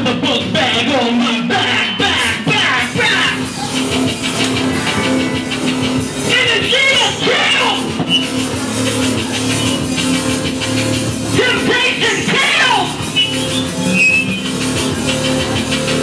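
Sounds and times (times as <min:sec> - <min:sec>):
electronic punk band playing: 0:00.0 - 0:16.0
held synth note: 0:03.3 - 0:07.6
person's voice: 0:06.2 - 0:07.9.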